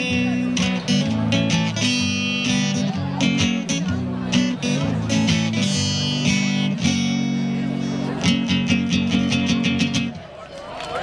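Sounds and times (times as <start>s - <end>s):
guitar strumming through speakers: 0.0s - 10.4s.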